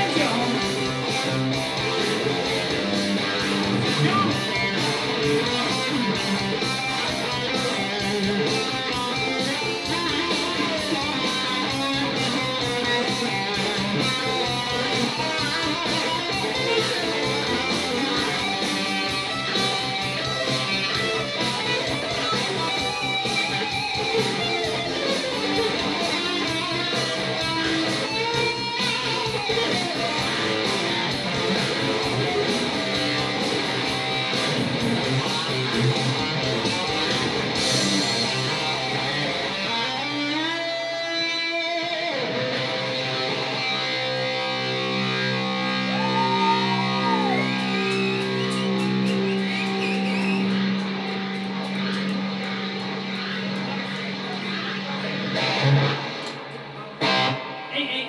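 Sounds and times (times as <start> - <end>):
electric guitar through amplifier: 0.0 - 58.0
rock backing track: 0.0 - 58.0.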